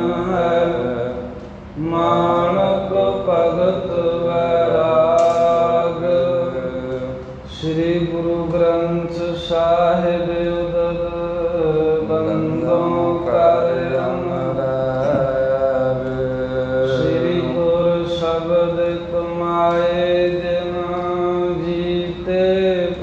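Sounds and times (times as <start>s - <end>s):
man chanting: 0.0s - 23.0s
steady held drone: 0.0s - 23.0s.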